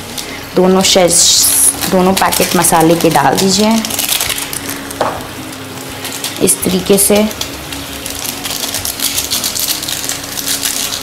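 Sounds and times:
foil sachet crinkling: 0.0 - 11.0.

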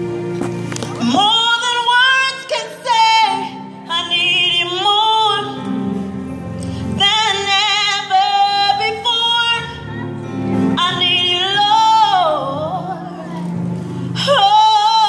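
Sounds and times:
keyboard accompaniment: 0.0 - 15.0
woman singing gospel: 1.0 - 6.0, 6.8 - 15.0.

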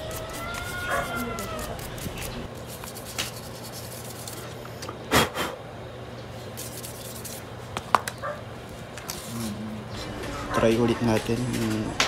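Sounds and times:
toothbrush scratching: 0.0 - 4.4, 6.6 - 7.4.

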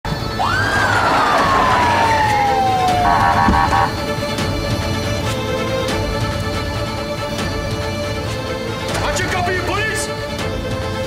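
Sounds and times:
police siren wail: 0.4 - 4.3
rapid siren chirps: 0.8 - 4.1.

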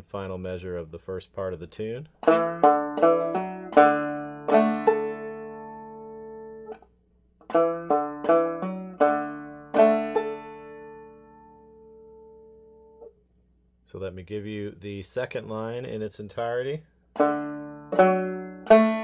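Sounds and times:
banjo plucking and strumming: 2.2 - 13.1, 17.1 - 19.0.

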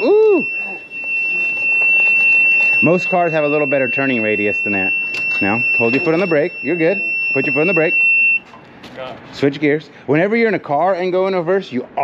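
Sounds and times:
reverse warning beeper tone: 0.0 - 8.5.

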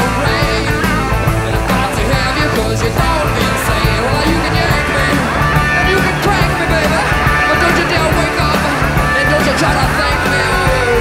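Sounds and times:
live hard rock band: 0.0 - 11.0.

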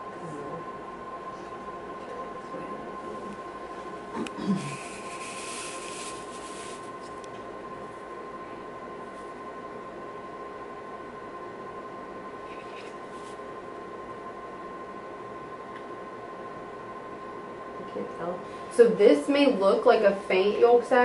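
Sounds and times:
electrical hum: 0.0 - 21.0
high whine: 0.0 - 21.0.

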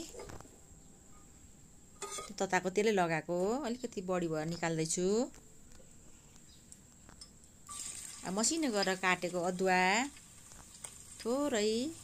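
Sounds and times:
ginger sizzling in oil: 7.7 - 12.0.

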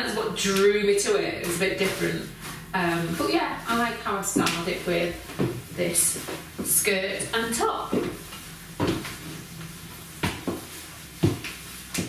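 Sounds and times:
dull footstep thumps: 1.2 - 12.0.

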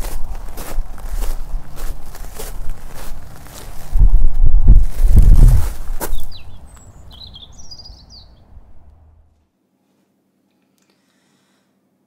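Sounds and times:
low outdoor rumble: 0.0 - 9.4
small birds chirping: 5.9 - 9.1.

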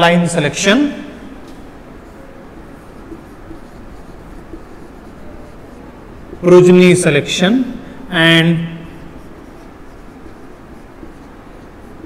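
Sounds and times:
marker pen writing on whiteboard: 0.0 - 12.0.

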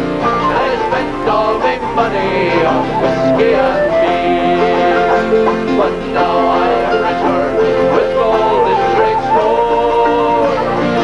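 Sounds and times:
banjo: 0.0 - 11.0
strummed guitar: 0.0 - 11.0
men singing: 0.2 - 11.0.

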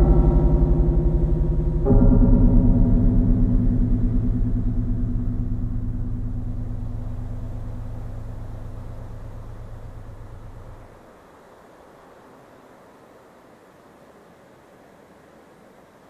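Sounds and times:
low throbbing synthesizer chord: 0.0 - 11.0.

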